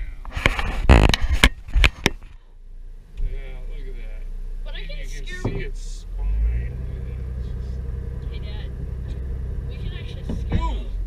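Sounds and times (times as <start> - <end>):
vehicle engine and road rumble: 0.0 - 11.0.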